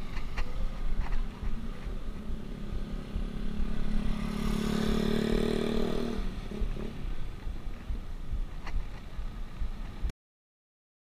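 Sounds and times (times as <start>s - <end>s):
low rumble of wind and road: 0.0s - 10.1s
vehicle engine passing by: 1.6s - 7.4s.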